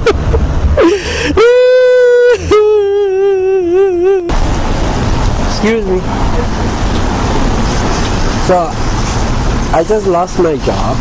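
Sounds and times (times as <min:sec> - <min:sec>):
road traffic rumble: 0:00.0 - 0:11.0
person's voice: 0:02.1 - 0:04.4, 0:05.5 - 0:06.5, 0:09.8 - 0:11.0.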